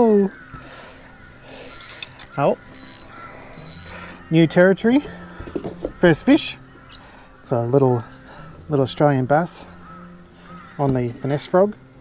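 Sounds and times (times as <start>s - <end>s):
fishing reel clicking: 1.4s - 4.1s.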